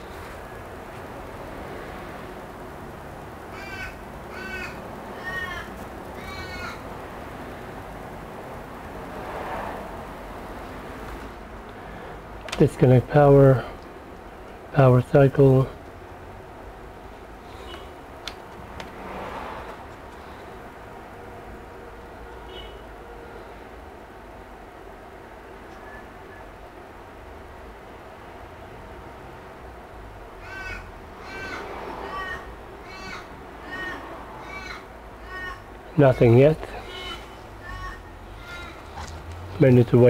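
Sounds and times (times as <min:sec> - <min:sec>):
low background hum: 0:00.0 - 0:40.0.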